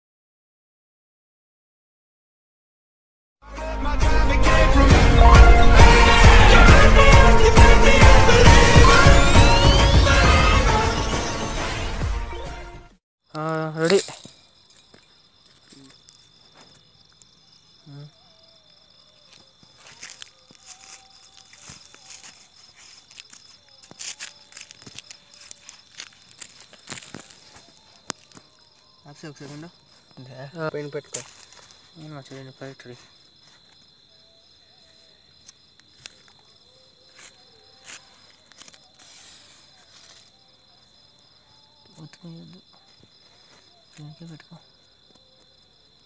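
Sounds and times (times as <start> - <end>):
crickets chirping: 13.3 - 46.0
hands rustling: 19.7 - 28.4.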